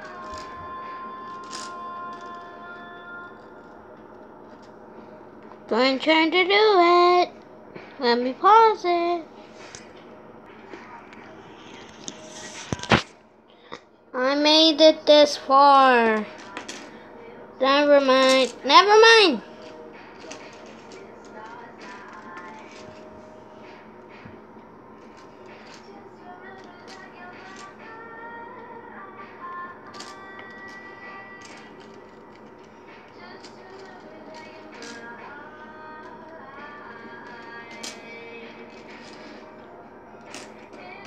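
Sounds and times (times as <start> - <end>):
faint background music: 0.0 - 41.0.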